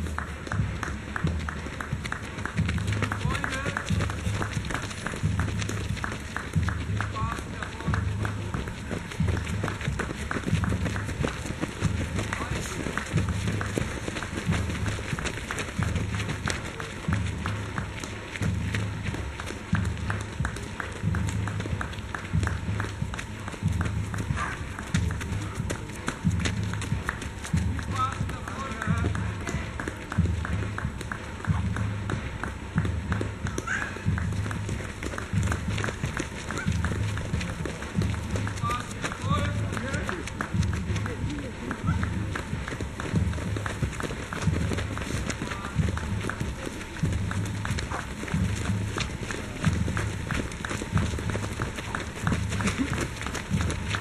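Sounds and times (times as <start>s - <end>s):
runners' footsteps on dirt trail: 0.0s - 54.0s.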